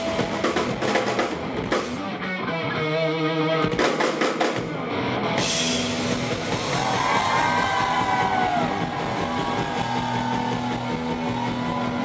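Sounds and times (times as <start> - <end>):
electric guitar bending notes: 0.0 - 3.9
live rock band: 0.0 - 12.0.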